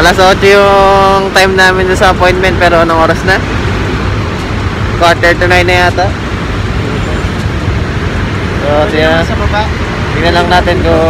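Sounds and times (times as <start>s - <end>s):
cars and scooters passing: 0.0s - 11.0s
road traffic rumble: 0.0s - 11.0s.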